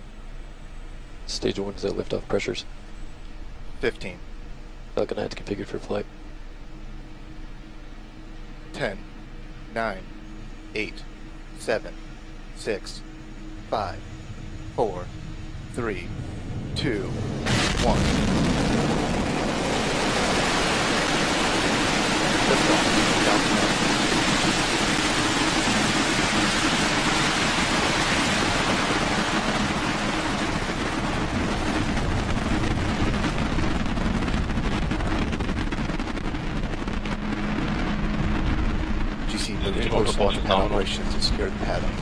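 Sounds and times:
rocket engines rumbling: 0:00.0 - 0:42.0.

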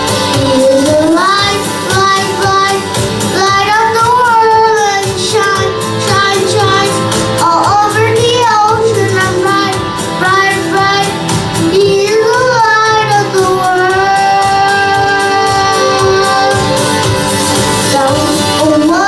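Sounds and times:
boy singing into microphone: 0:00.0 - 0:17.1, 0:17.7 - 0:19.0
music accompaniment: 0:00.0 - 0:19.0.

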